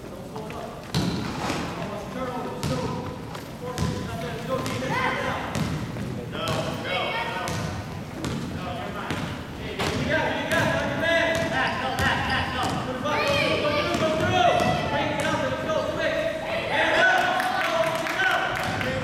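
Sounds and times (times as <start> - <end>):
voices calling out and chattering: 0.0 - 19.0
basketball bouncing on wood floor: 0.9 - 1.3, 3.8 - 4.9, 5.5 - 6.8, 7.5 - 8.5, 9.1 - 15.3.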